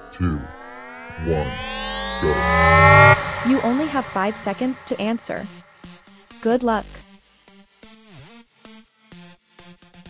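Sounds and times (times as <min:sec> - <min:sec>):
low pitched hits: 0:00.0 - 0:06.1
synthesized riser sweeping upward: 0:00.0 - 0:06.2.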